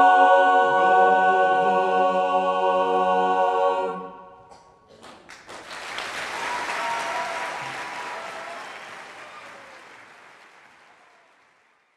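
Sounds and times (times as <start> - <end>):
audience applause: 5.0 - 11.9.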